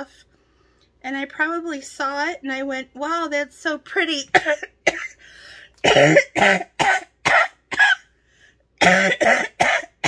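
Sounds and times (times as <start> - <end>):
woman coughing: 4.3 - 5.2, 5.8 - 8.1, 8.8 - 10.0
breath in: 5.2 - 5.8.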